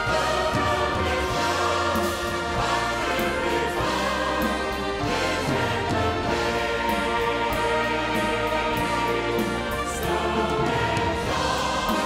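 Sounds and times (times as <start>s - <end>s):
choir singing: 0.0s - 12.0s
orchestral accompaniment: 0.0s - 12.0s.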